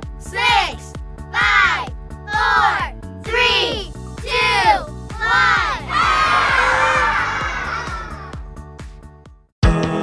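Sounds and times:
children cheering and shouting: 0.3 - 8.5.

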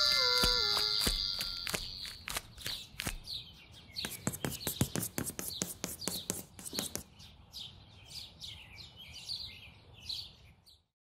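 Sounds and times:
high ringing tone: 0.0 - 2.3.

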